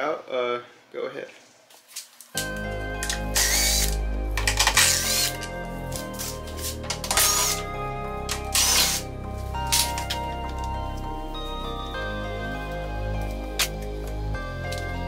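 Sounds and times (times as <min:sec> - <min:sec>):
background music: 0:02.4 - 0:15.0.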